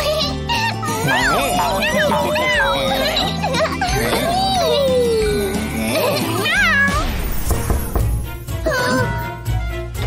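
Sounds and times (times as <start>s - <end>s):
cartoon cat meow: 6.3s - 7.1s.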